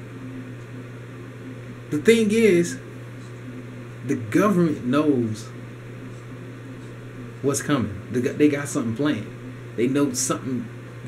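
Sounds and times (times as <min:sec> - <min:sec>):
low hum with hiss: 0:00.0 - 0:11.0
man speaking: 0:01.9 - 0:02.8, 0:04.0 - 0:05.6, 0:07.4 - 0:10.7.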